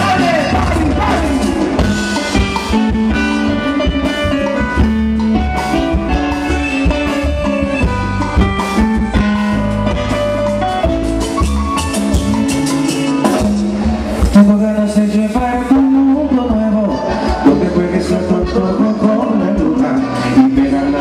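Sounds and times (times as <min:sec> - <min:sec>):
bass and percussion: 0:00.0 - 0:21.0.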